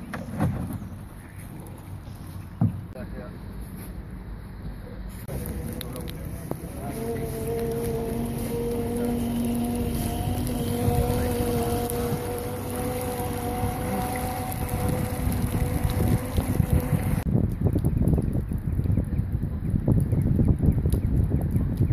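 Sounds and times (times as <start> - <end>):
wind buffeting microphone: 5.2 - 21.9
outboard motor running: 5.3 - 17.2.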